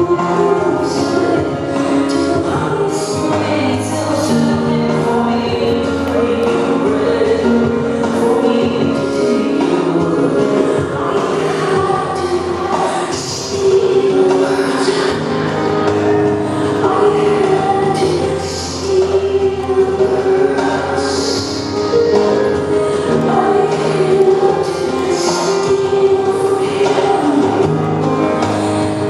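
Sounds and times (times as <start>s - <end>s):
grand piano: 0.0s - 29.0s
woman singing: 0.0s - 29.0s.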